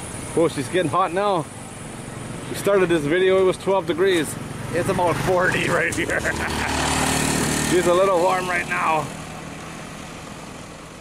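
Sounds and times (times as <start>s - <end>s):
motorcycles on a highway: 0.0s - 11.0s.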